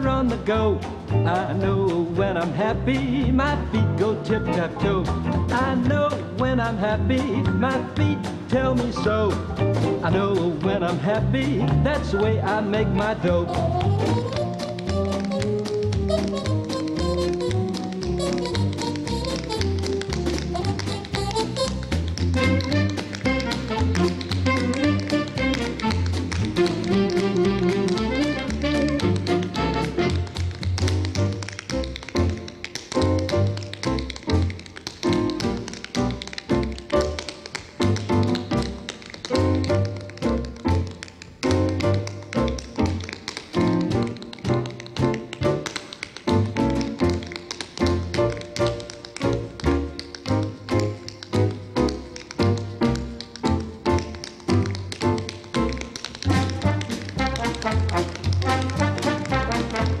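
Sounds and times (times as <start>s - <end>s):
tap shoes on stage floor: 0.0s - 60.0s
big band with brass: 22.4s - 30.4s, 56.3s - 60.0s.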